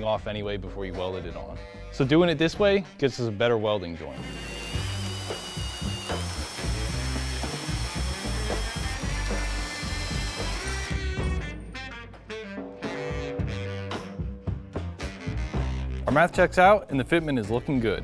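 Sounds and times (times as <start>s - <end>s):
background music: 0.0s - 18.0s
drill motor whine: 4.1s - 11.0s
hole saw grinding steel tube: 4.1s - 11.0s.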